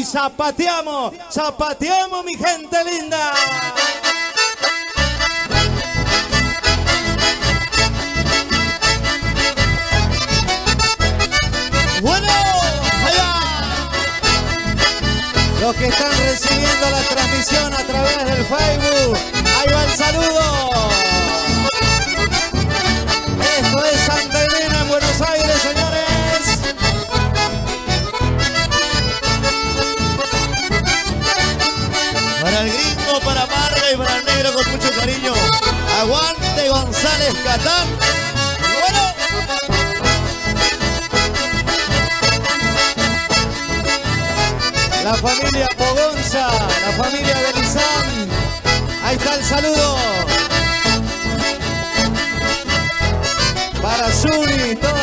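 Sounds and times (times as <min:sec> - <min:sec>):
accordion melody: 0:02.0 - 0:55.0
steady bass beat: 0:05.2 - 0:55.0.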